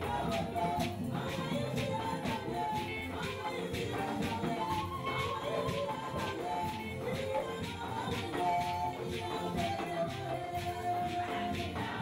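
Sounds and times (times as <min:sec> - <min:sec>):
percussion beat: 0:00.0 - 0:12.0
women's choir singing: 0:00.0 - 0:12.0.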